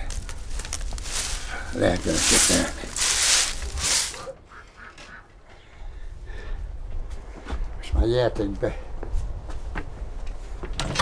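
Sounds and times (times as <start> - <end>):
dry twigs rustling: 0.0 - 4.4.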